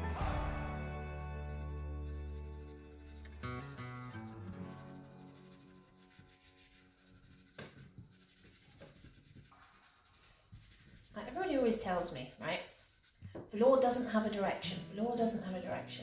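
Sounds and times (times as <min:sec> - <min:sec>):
background music: 0:00.0 - 0:07.1
pastel stick scratching on paper: 0:00.7 - 0:15.8.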